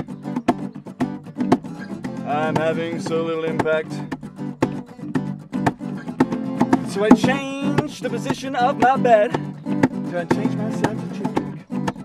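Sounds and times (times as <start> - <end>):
acoustic guitar strumming: 0.0 - 12.0
person singing: 2.2 - 4.1, 6.8 - 11.7.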